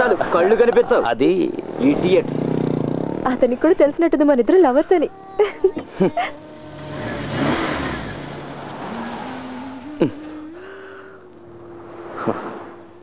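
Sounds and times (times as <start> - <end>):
car rushing noise: 0.0 - 3.6, 6.3 - 13.0
steady hum: 9.2 - 13.0.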